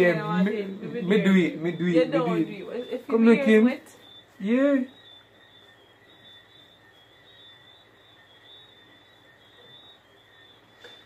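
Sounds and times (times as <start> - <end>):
high-pitched whine: 0.0 - 11.0
faint hiss: 7.5 - 11.0.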